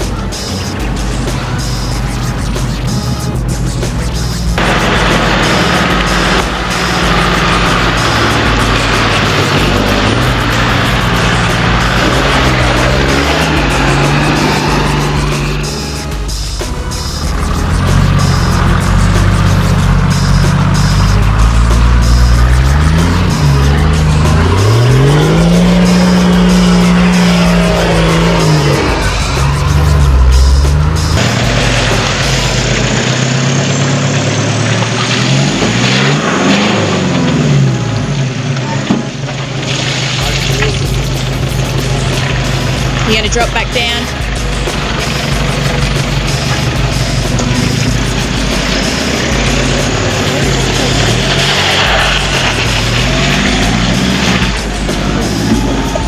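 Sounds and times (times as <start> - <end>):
background music: 0.0 - 56.0
engines revving: 0.0 - 56.0.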